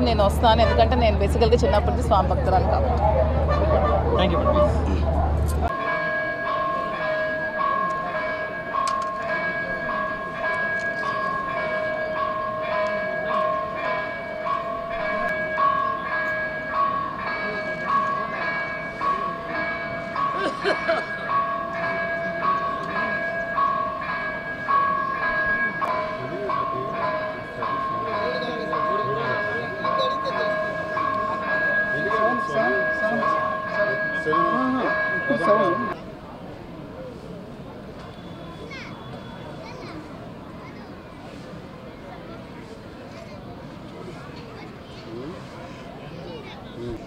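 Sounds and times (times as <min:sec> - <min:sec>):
steady multi-tone ringing: 0:05.6 - 0:37.1, 0:37.9 - 0:40.6.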